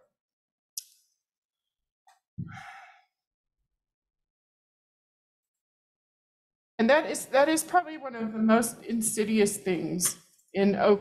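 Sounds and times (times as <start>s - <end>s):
person sighing: 2.4s - 3.0s
person breathing: 2.4s - 3.2s.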